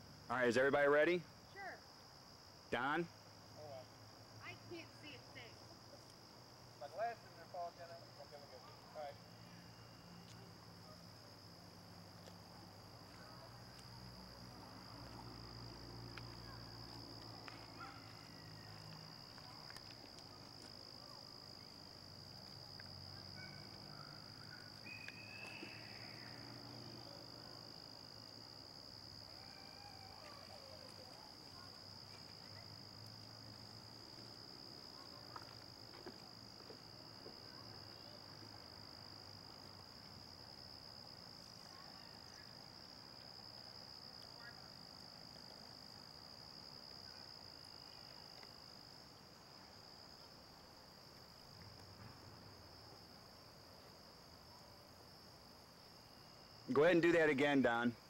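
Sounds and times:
crickets trilling: 0.0s - 58.0s.

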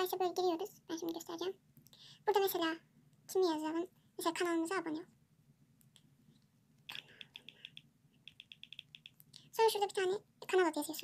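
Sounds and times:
phone screen typing clicks: 6.9s - 9.2s.

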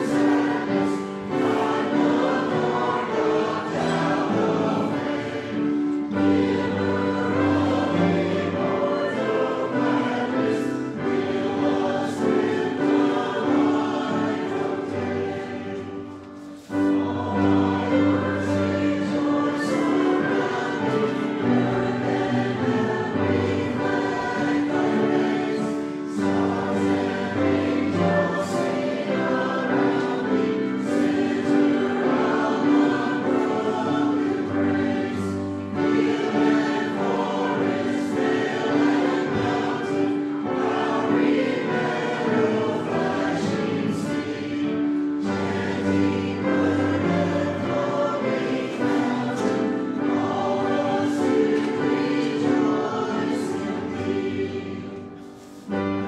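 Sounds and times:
choir and congregation singing hymn: 0.0s - 56.0s.

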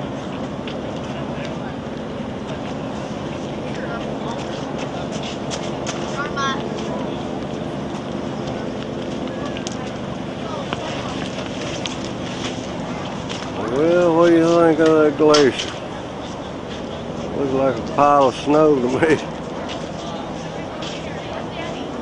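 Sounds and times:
faint indistinct voices: 0.0s - 22.0s
outdoor background noise: 0.0s - 22.0s.

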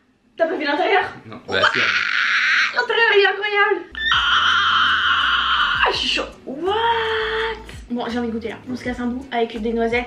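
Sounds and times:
woman screaming with excitement: 4.0s - 6.0s.

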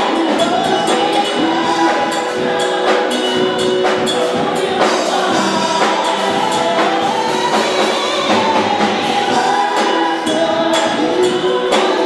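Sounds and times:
choir singing gospel: 0.0s - 12.0s
live band accompaniment: 0.0s - 12.0s.

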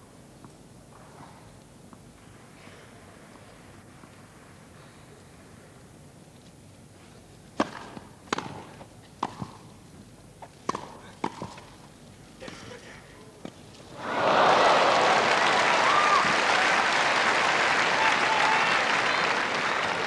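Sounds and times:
racket hitting tennis ball: 7.6s - 9.8s, 10.4s - 11.8s
crowd applauding: 14.0s - 20.0s.

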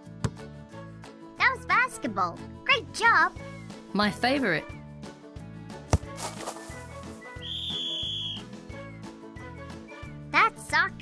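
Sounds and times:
children's music with steady beat: 0.7s - 11.0s
sports whistle blast: 7.4s - 8.5s.

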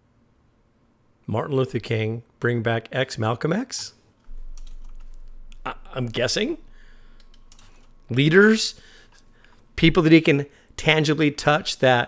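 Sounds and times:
steady low hum: 4.2s - 12.0s
computer keyboard typing: 4.3s - 5.7s, 7.2s - 8.0s
man speaking: 5.2s - 6.9s, 8.0s - 9.0s, 9.7s - 12.0s.

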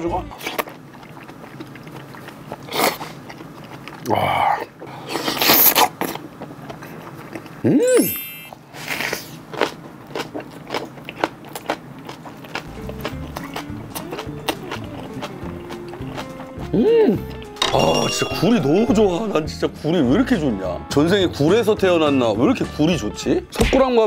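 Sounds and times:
quiet background music: 0.0s - 0.8s, 12.3s - 24.0s
wet chewing clicks: 0.3s - 7.7s, 8.8s - 17.6s
wet slurping: 0.4s - 9.6s
person humming: 13.4s - 17.4s.

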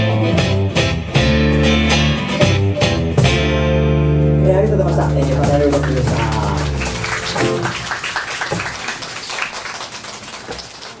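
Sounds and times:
acoustic guitars and bass chord: 0.0s - 8.0s
people clapping: 4.8s - 11.0s.

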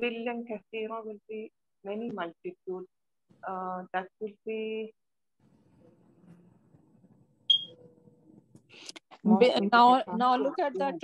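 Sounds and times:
short high electronic beep: 7.5s - 7.8s.

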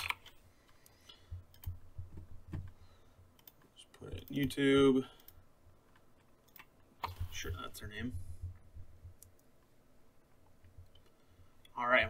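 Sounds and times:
computer mouse clicks: 0.0s - 1.8s, 3.4s - 4.5s, 5.2s - 7.4s.

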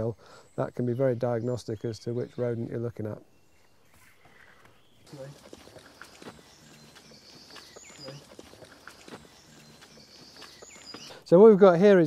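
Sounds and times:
faint high chirps: 0.0s - 11.3s
footsteps crunching on woodland path: 3.6s - 11.8s.

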